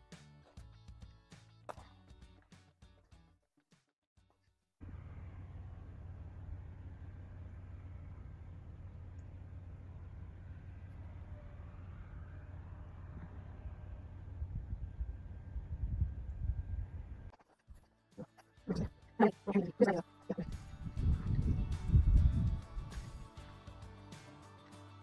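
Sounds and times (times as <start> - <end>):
wind buffeting microphone: 12.9 - 17.3, 20.4 - 23.2.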